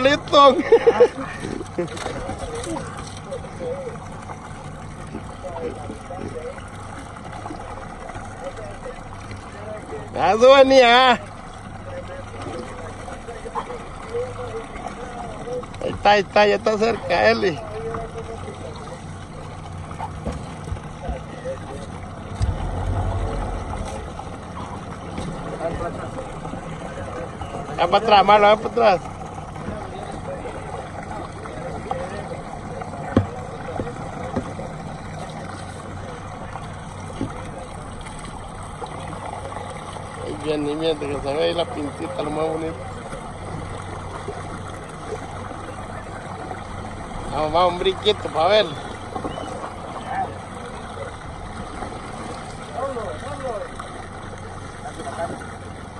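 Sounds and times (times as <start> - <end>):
boat engine humming: 0.0 - 55.9
faint voices: 0.0 - 55.9
outboard motors running: 0.0 - 55.9
water noise: 0.0 - 55.9
wind: 0.0 - 55.9.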